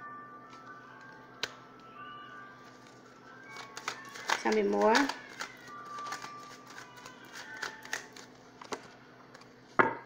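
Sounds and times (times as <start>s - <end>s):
faint background music: 0.0s - 9.7s
cards being shuffled: 2.7s - 9.5s.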